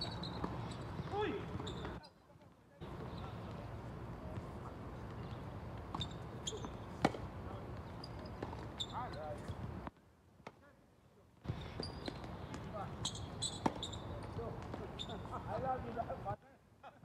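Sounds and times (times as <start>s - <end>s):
tennis ball bouncing: 0.0s - 2.0s, 4.3s - 9.6s, 11.5s - 15.2s
tennis racket hitting ball: 13.5s - 13.9s.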